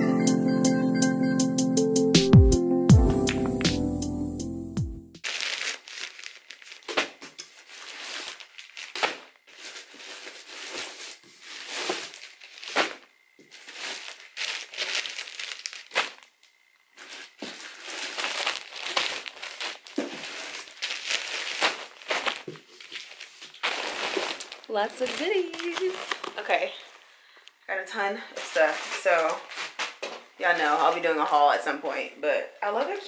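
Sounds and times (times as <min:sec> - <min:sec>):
plastic bags crinkling: 0:05.2 - 0:27.4, 0:28.2 - 0:31.6.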